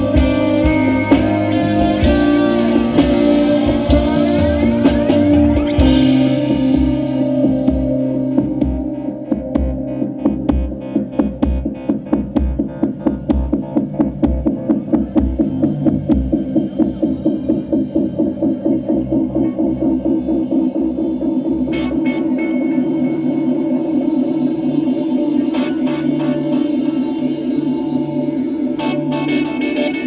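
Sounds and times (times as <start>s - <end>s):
low drum beat: 0.0s - 20.7s
pulsing keyboard: 0.0s - 30.0s
sustained chords: 0.0s - 30.0s.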